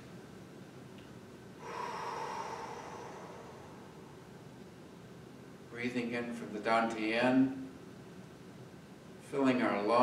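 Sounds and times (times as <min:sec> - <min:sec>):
man breathing in deeply: 0:01.6 - 0:04.6.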